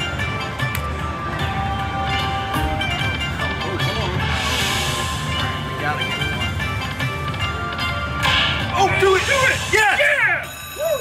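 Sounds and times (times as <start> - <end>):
slot machine chime tones: 9.2 - 11.0.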